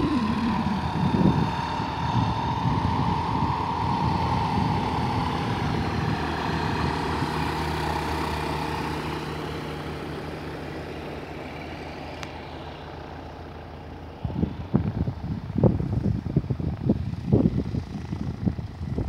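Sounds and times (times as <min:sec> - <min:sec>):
light aircraft engine droning: 0:00.0 - 0:19.0.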